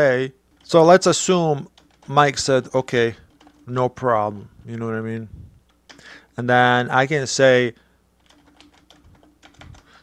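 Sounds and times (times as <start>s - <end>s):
typing on computer keyboard: 1.6s - 3.7s, 8.2s - 10.0s.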